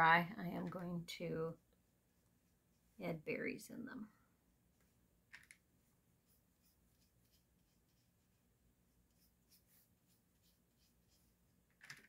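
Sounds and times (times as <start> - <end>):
paintbrush strokes on paper: 0.6 - 3.5, 4.7 - 11.7.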